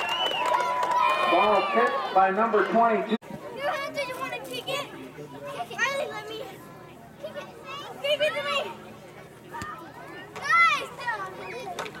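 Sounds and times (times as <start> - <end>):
children calling out and talking: 3.4 - 12.0.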